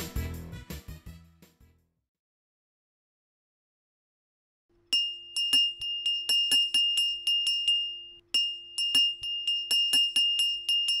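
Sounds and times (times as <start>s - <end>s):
small bell ringing rapidly: 4.9s - 11.0s.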